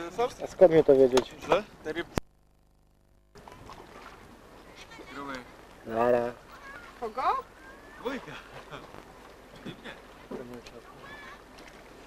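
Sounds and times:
sea water: 0.0 - 12.0
wind: 0.0 - 12.0.

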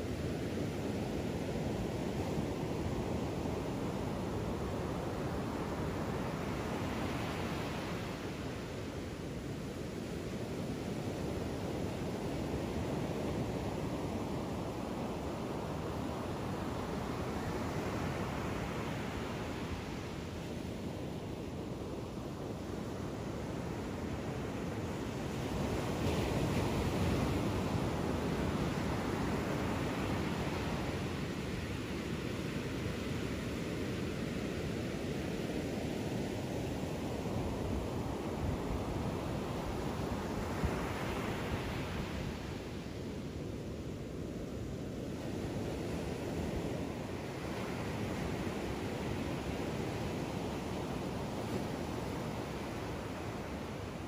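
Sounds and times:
ocean surf breaking on a beach: 0.0 - 54.0.

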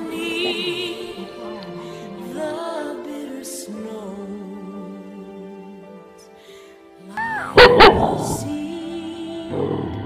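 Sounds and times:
soft background music: 0.0 - 10.0
dog barking: 7.5 - 8.5.

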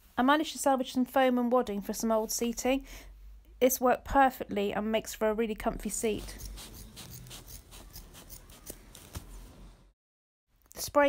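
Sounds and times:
scissors snipping wadding: 6.2 - 9.4.

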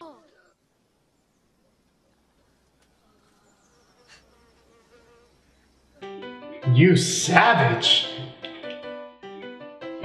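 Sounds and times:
faint thin hum: 0.0 - 6.0
faint hiss: 0.3 - 6.0.

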